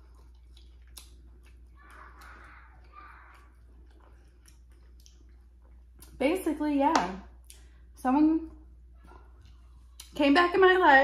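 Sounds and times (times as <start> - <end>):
person chewing food: 0.0 - 6.2, 8.6 - 10.2.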